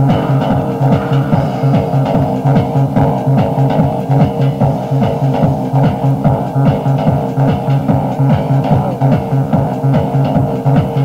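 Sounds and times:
electronic dance music: 0.0 - 3.7.

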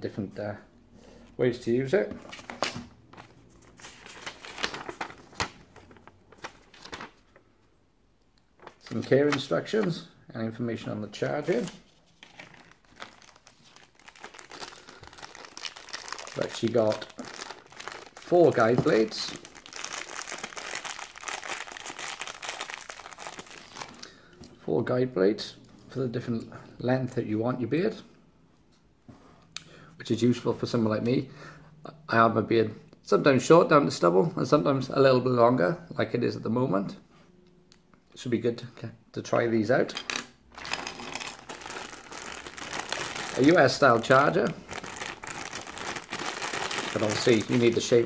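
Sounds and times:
plastic bag crinkling: 3.7 - 7.2, 11.4 - 24.1, 40.5 - 48.0.

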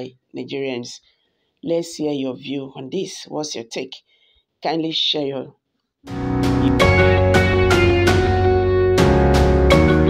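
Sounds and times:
plucked notes over sustained bass: 6.1 - 10.0.

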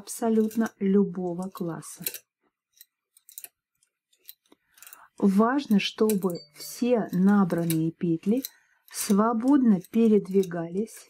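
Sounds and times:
knitting machine metal clicks: 0.0 - 11.0.

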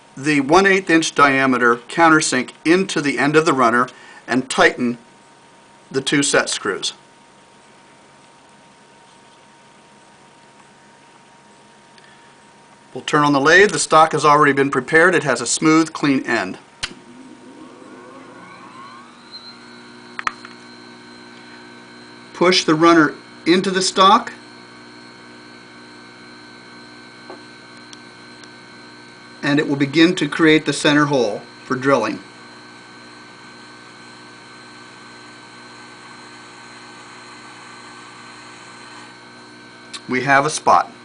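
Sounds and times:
brief click: 16.8 - 17.0
electric motor whining: 16.8 - 41.0.

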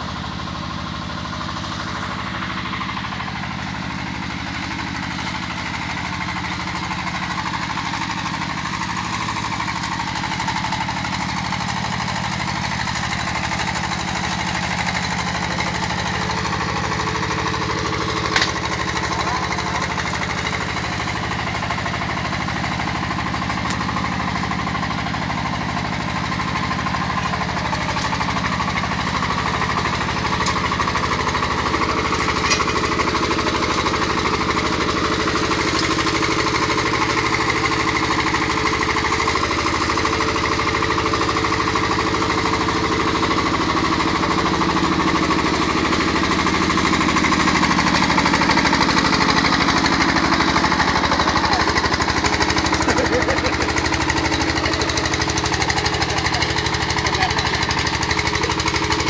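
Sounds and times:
diesel engine running: 0.0 - 59.0.

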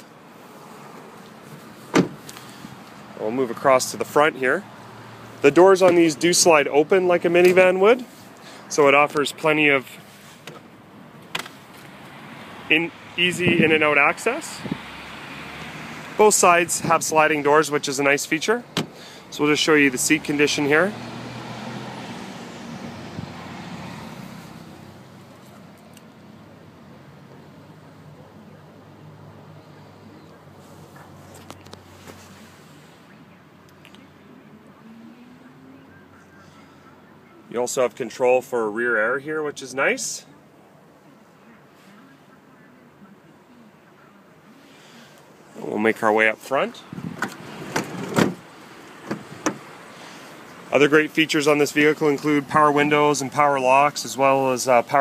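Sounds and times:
outdoor background noise: 0.0 - 55.0.

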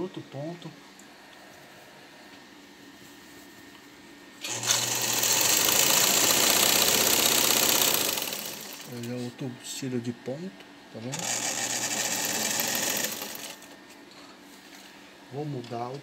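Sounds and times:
sewing machine running: 4.4 - 9.0, 11.1 - 13.7.

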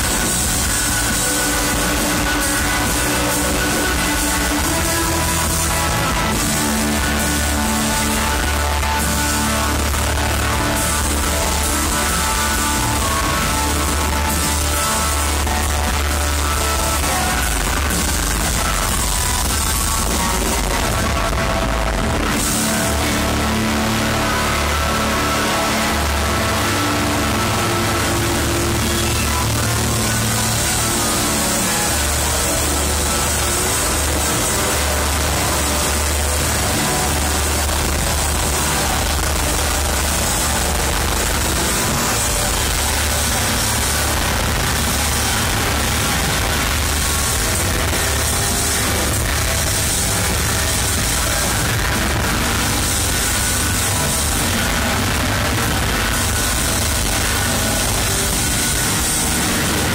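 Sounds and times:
loud live rock band: 0.0 - 59.9.

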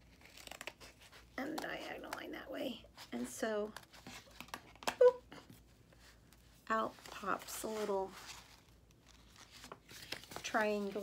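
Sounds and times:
paper sheets rustling: 6.8 - 11.0.

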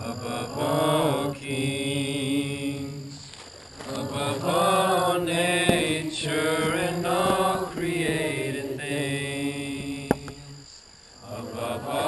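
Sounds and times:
group singing worship song: 0.0 - 12.0.

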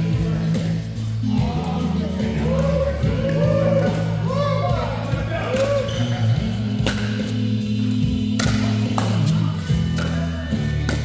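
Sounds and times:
background music with bass line: 0.0 - 11.0.

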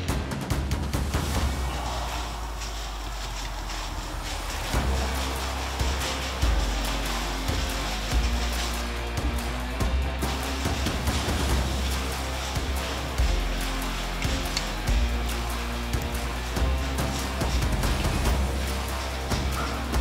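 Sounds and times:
background music with bass line: 0.0 - 20.0
percussive hits: 0.0 - 20.0.

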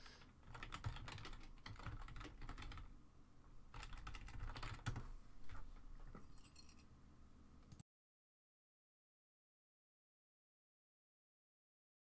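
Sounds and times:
computer keyboard typing: 0.4 - 2.9, 3.7 - 5.6.

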